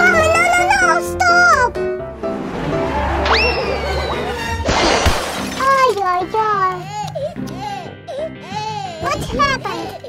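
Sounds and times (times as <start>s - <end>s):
child's high voice: 9.0s - 10.0s.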